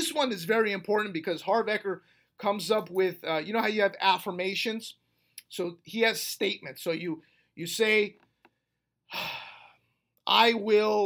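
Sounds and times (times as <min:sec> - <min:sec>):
man breathing out: 0:09.1 - 0:10.0.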